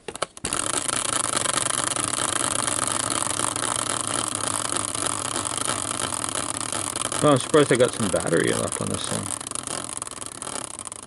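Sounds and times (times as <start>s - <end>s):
prize wheel spinning on axle: 0.4s - 11.0s.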